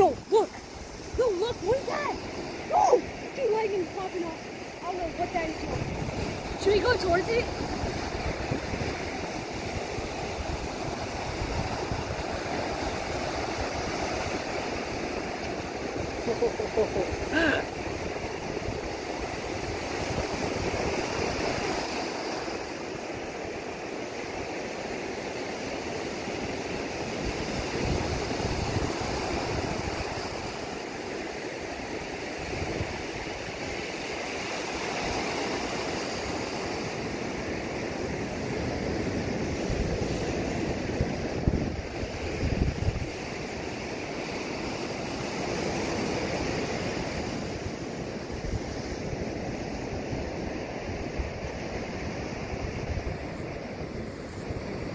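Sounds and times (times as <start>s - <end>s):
wind buffeting microphone: 0.0s - 23.8s, 26.5s - 54.9s
ocean surf breaking: 0.0s - 54.9s.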